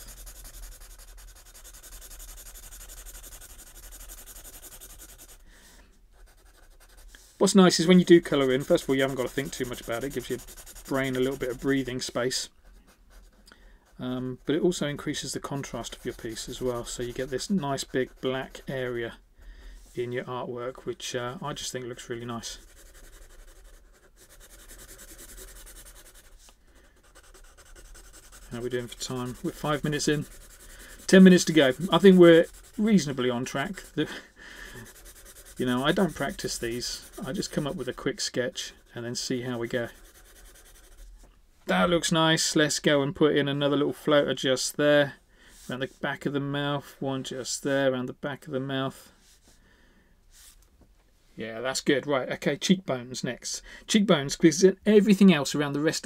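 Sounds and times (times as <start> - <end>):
marker rubbing on paper: 0.0 - 5.4, 6.2 - 13.4, 14.4 - 18.8, 22.2 - 38.1, 39.4 - 41.2.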